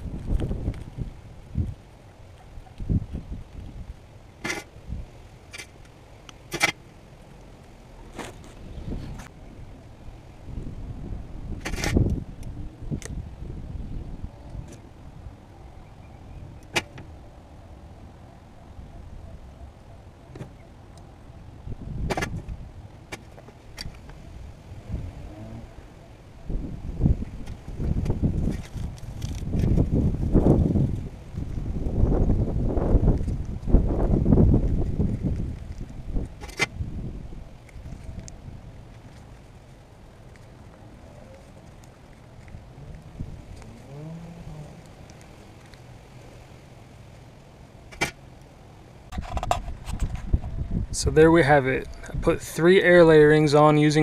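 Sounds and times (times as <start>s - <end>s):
wind buffeting microphone: 0.0s - 4.1s, 8.2s - 17.2s, 20.5s - 23.0s, 23.6s - 39.2s, 40.6s - 46.1s, 49.1s - 54.0s.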